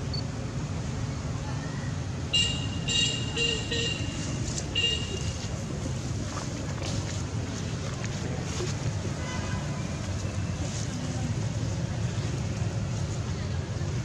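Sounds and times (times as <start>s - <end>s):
outdoor background hiss: 0.0s - 14.0s.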